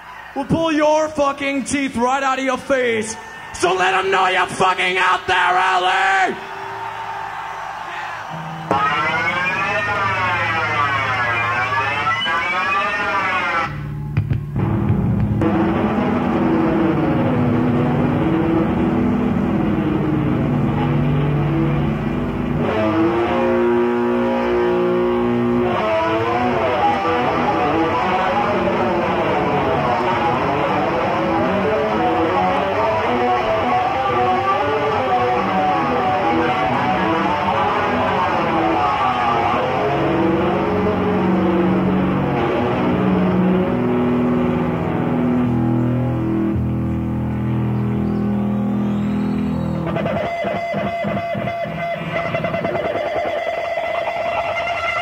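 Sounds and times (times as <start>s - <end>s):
distorted electric bass with wah: 8.5s - 48.8s, 49.5s - 55.0s.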